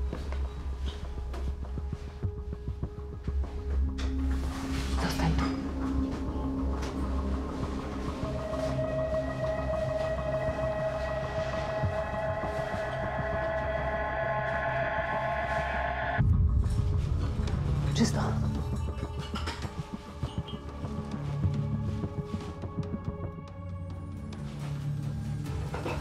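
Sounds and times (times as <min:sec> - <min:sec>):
low throbbing drone: 0:00.0 - 0:26.0
sustained held tones: 0:08.3 - 0:16.2.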